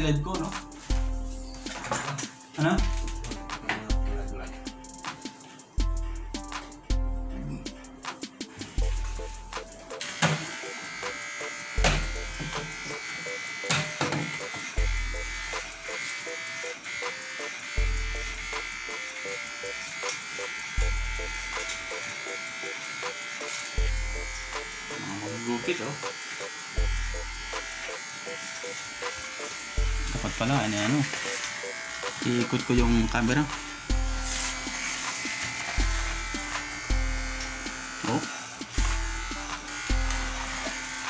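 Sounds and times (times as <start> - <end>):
background music with deep bass: 0.0 - 10.1, 22.8 - 41.0
electric hair clippers buzzing: 7.7 - 41.0.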